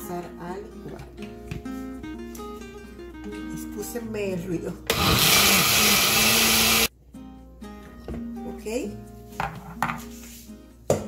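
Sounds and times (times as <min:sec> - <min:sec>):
background guitar music: 0:00.0 - 0:11.0.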